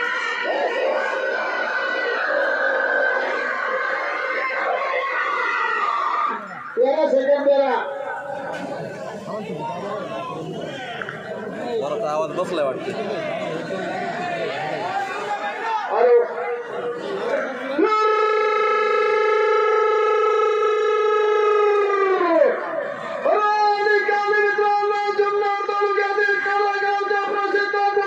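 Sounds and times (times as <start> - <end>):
man's long call over loudspeakers: 0.0 - 3.4, 4.0 - 28.0
mixed voices and chatter: 0.0 - 28.0.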